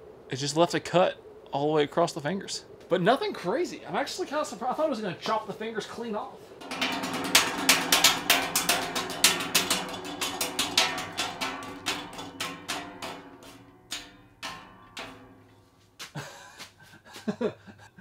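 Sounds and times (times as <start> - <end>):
fan motor humming: 6.5 - 15.7
fan blades slapping gel hand: 6.6 - 16.1.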